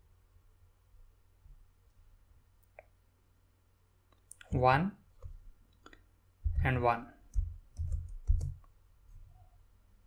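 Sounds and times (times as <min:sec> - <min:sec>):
computer keyboard keystrokes: 0:07.3 - 0:08.7.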